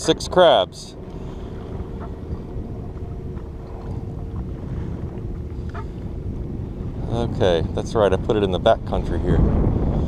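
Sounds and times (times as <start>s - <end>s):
boat motor hum: 0.0s - 10.0s
wind and water rumble: 0.0s - 10.0s.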